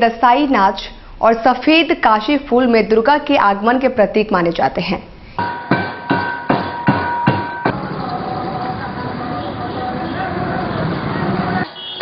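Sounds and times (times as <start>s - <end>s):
street noise: 0.0s - 12.0s
ringing metallic tone: 5.4s - 7.8s.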